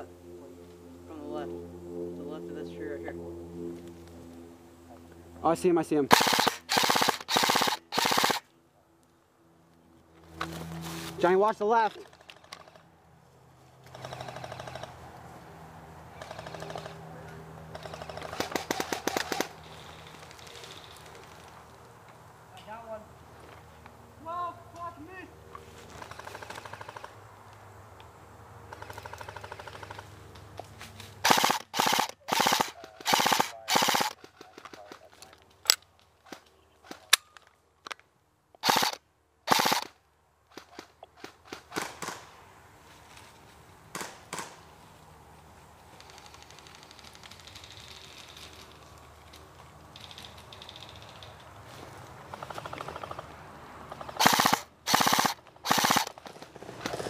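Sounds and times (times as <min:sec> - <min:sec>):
airsoft rifle firing: 0:06.1 - 0:08.4, 0:17.9 - 0:19.5, 0:31.2 - 0:34.9, 0:38.6 - 0:39.9, 0:40.5 - 0:42.3, 0:54.1 - 0:56.2.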